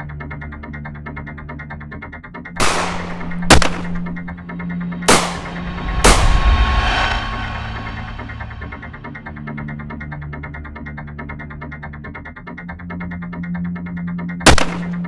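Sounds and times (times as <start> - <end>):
gunshots with echo: 2.6 - 4.4, 5.0 - 6.3, 14.5 - 15.0
low rumble: 2.6 - 9.7.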